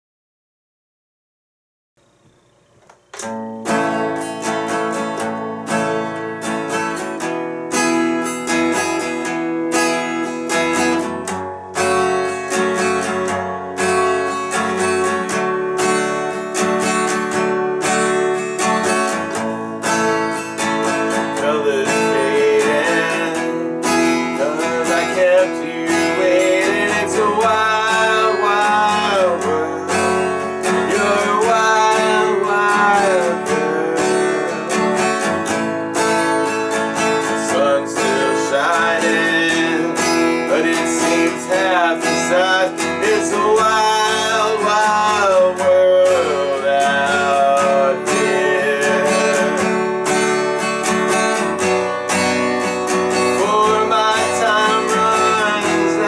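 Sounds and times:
acoustic guitar strumming: 2.1s - 56.0s
person singing: 19.2s - 50.1s, 53.1s - 56.0s.

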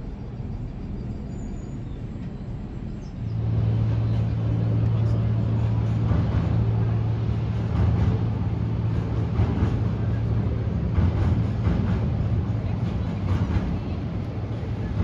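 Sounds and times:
light-rail trains humming: 0.0s - 15.0s
people's voices: 3.9s - 15.0s.

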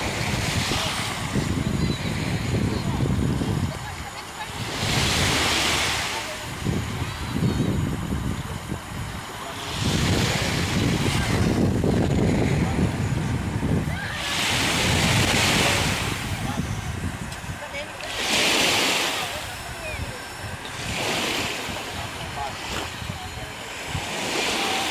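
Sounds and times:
small waves washing on sand: 0.0s - 24.9s
wind rumbling on microphone: 0.0s - 24.9s.

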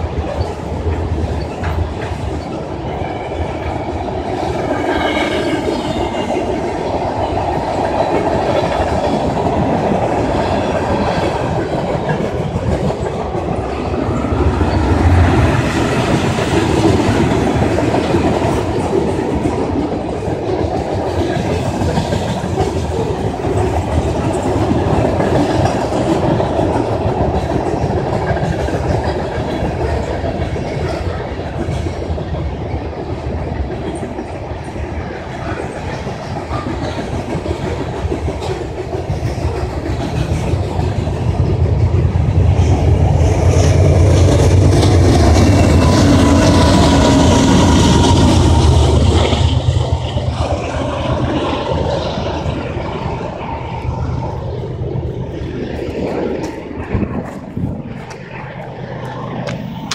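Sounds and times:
freight train wheels rumbling: 0.0s - 59.9s.

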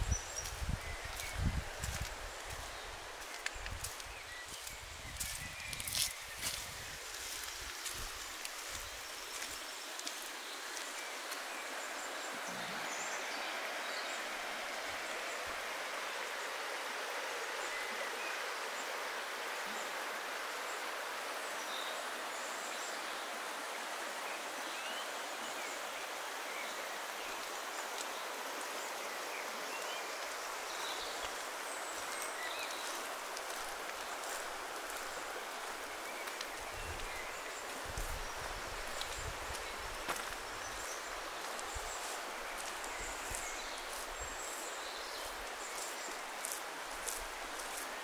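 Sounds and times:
river flowing over stones: 0.0s - 48.0s.

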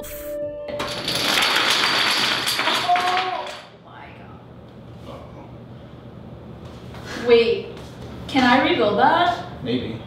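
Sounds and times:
dominoes clattering down: 0.7s - 3.7s.

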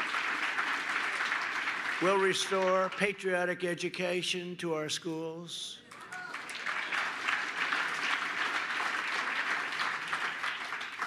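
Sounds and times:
audience applauding: 0.0s - 3.2s, 5.9s - 11.0s.

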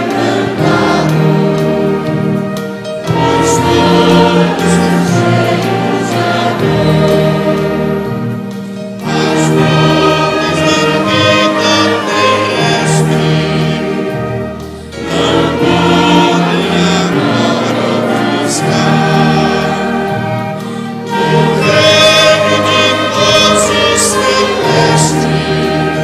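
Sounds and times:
orchestra playing a slow hymn: 0.0s - 26.0s.

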